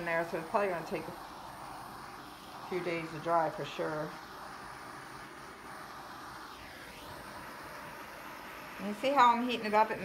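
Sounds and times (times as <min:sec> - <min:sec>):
gas torch hissing: 0:00.0 - 0:10.0.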